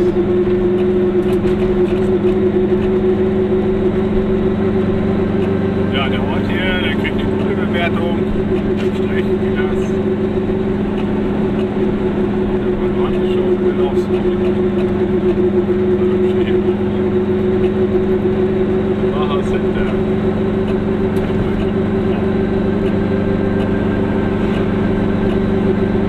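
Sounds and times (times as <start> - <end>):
car engine and road noise: 0.0 - 26.0.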